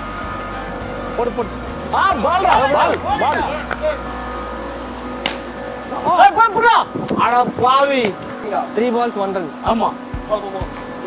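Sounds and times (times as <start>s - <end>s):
steady low hum: 0.0s - 11.0s
sharp crack: 5.2s - 5.5s.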